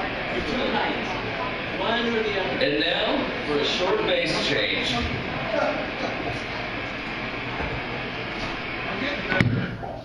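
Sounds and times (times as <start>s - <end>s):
crowd chatter: 0.0s - 10.0s
noisy background: 0.0s - 10.0s.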